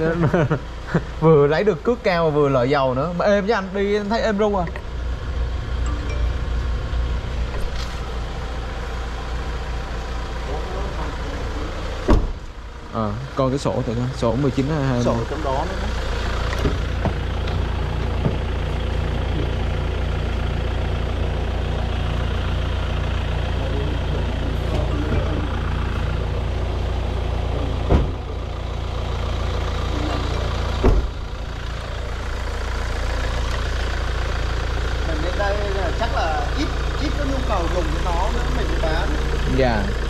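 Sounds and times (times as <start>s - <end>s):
diesel engine idling: 0.0s - 40.0s.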